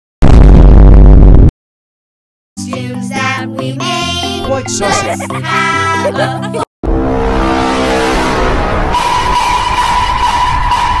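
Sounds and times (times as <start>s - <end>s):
low rumbling noise: 6.8s - 11.0s.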